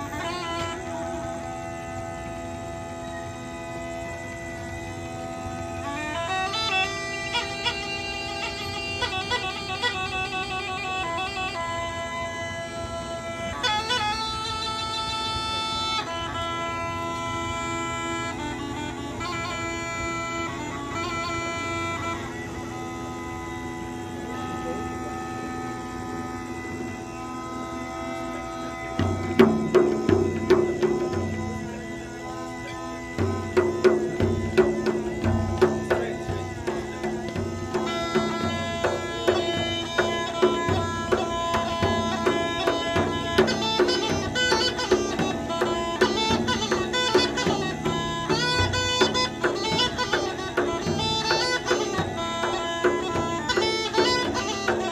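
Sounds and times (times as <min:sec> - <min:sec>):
bagpipe drone: 0:00.0 - 0:54.9.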